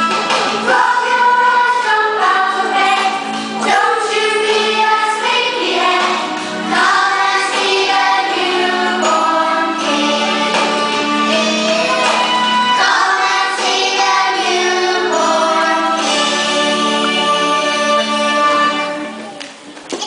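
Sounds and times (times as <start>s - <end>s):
children's choir singing: 0.0s - 19.3s
held accompaniment note: 0.0s - 19.4s.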